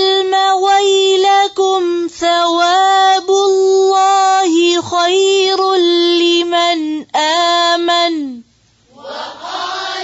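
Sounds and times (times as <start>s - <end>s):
woman chanting verses: 0.0s - 10.0s.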